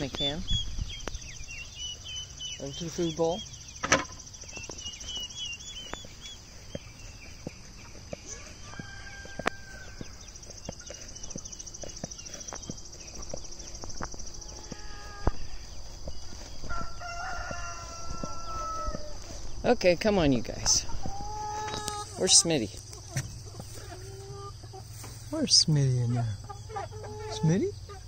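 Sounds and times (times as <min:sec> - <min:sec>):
chickens clucking: 0:00.0 - 0:28.0
rooster crowing: 0:08.2 - 0:10.3, 0:16.6 - 0:19.3.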